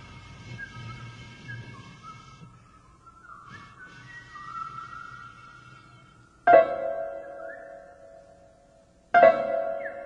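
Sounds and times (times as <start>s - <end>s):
low notes: 6.3s - 10.0s.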